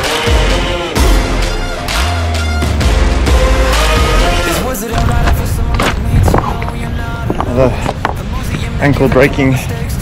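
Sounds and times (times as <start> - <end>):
song playing in background: 0.0 - 10.0
running footsteps on stones: 4.6 - 9.5
loose rocks knocking together: 4.9 - 8.6.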